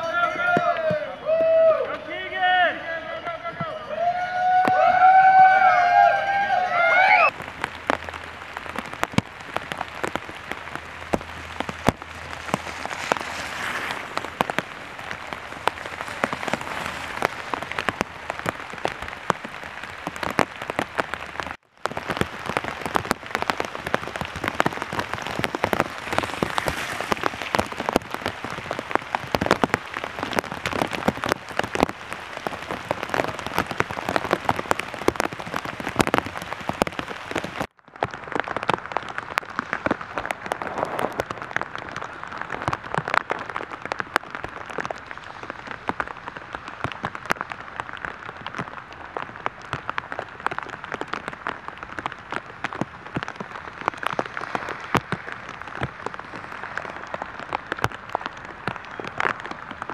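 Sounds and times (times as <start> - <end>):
rain falling on leaves: 0.0 - 59.9.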